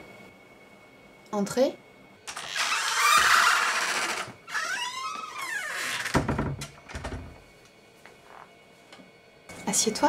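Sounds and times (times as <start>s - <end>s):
door hinges creaking: 2.3s - 7.4s.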